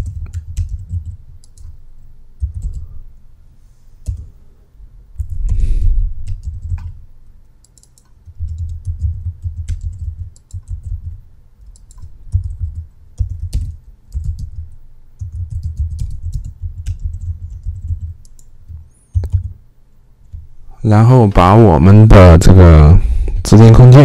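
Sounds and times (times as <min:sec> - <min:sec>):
typing on computer keyboard: 0:00.0 - 0:01.8, 0:02.4 - 0:03.0, 0:04.0 - 0:04.3, 0:06.2 - 0:07.0, 0:07.6 - 0:19.6.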